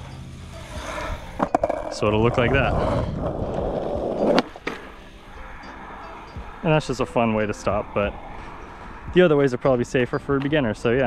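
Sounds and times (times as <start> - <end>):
skateboard wheels rolling on asphalt: 0.0 - 11.0
skateboard tail clacking on ground: 0.5 - 5.1.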